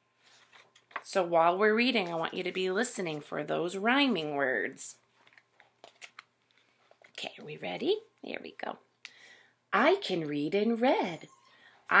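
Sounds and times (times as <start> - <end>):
book pages clicks and rustles: 0.2 - 3.4, 5.0 - 7.4.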